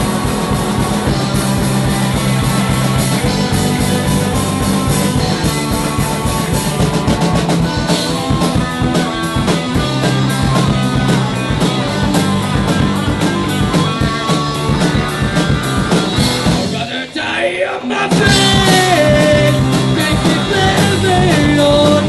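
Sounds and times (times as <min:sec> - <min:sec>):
drum kit beat: 0:00.0 - 0:17.2, 0:17.8 - 0:22.0
bass guitar: 0:00.0 - 0:22.0
electric guitars: 0:00.0 - 0:22.0.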